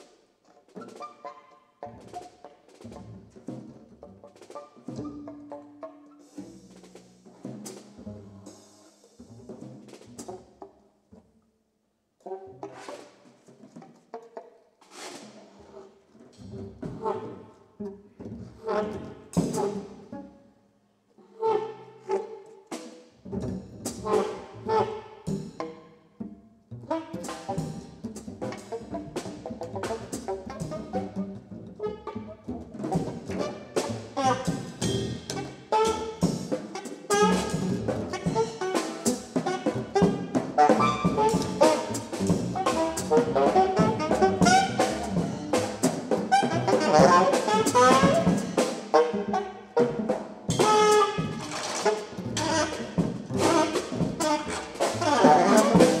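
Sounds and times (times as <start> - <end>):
double bass: 2.8 - 10.7, 15.4 - 20.4, 23.2 - 56.0
saxophone tones: 33.1 - 56.0
drum and cymbal strikes: 33.8 - 46.4, 47.2 - 49.0.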